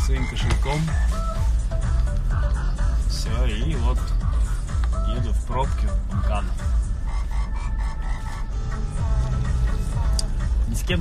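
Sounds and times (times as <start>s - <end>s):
car rumble in traffic: 0.0s - 11.0s
music on car radio: 0.0s - 11.0s.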